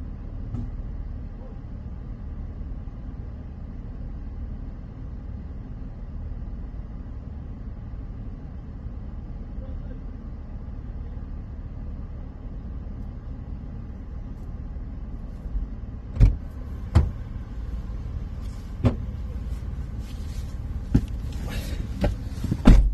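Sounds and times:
vehicle idling: 0.0 - 22.9.

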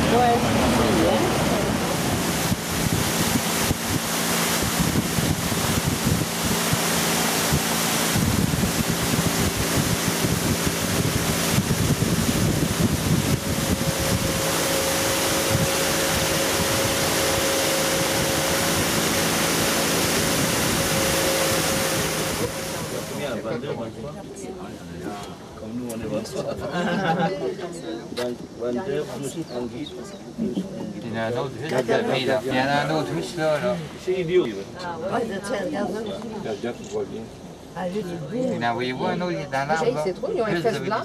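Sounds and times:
wind buffeting microphone: 0.0 - 23.4
water rushing past hull: 0.0 - 23.8
boat motor humming: 0.0 - 24.0
high steady tone: 2.1 - 23.4.

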